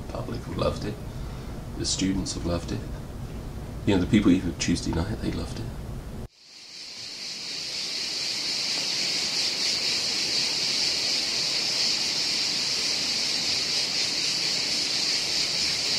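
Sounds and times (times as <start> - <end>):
cicadas buzzing: 6.3 - 15.9.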